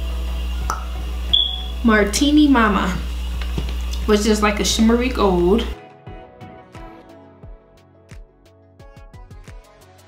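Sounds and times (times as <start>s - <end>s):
high-pitched beep: 1.3s - 1.8s.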